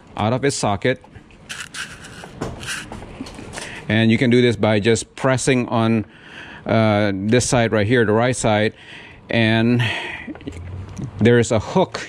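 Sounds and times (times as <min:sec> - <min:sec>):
gloved hands rubbing plastic: 0:01.5 - 0:03.0.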